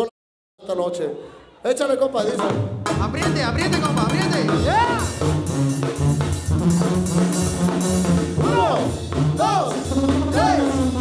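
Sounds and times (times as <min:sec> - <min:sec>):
brass: 0:02.3 - 0:11.0
drum hits: 0:02.4 - 0:11.0
tuba bass line: 0:02.4 - 0:11.0.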